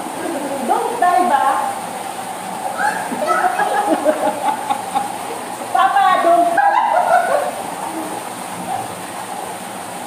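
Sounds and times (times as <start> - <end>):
waterfall pouring into pool: 0.0 - 10.0.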